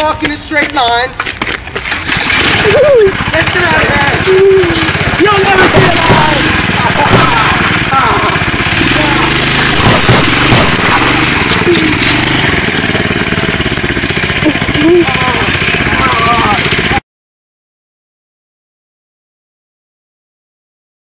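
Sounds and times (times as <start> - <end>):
go-kart engine running: 1.1 - 17.0
people laughing: 2.5 - 3.2, 3.9 - 9.4, 14.4 - 16.7
people shouting: 2.6 - 3.4, 4.1 - 12.6, 14.5 - 17.0.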